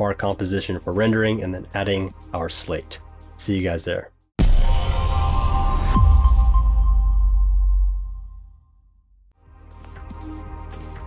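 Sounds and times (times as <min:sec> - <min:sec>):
deep bass drone: 0:04.4 - 0:08.7.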